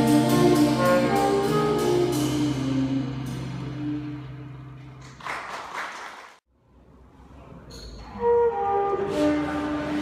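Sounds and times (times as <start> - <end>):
jazz combo held chord: 0.0 - 4.8
audience applause: 5.0 - 6.4.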